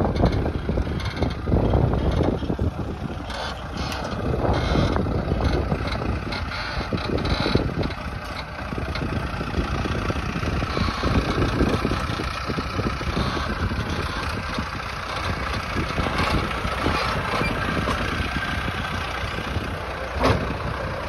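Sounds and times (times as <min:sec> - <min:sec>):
tractor diesel engine running: 0:00.0 - 0:21.0.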